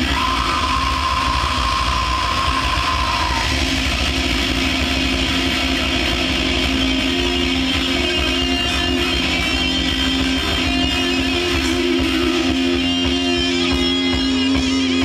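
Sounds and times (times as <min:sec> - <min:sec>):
distorted electric guitars: 0:00.0 - 0:15.0
drums: 0:00.0 - 0:15.0.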